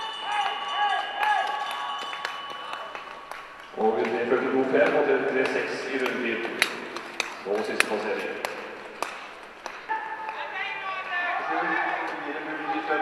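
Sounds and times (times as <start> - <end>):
indistinct voices in a hall: 0.0 - 13.0.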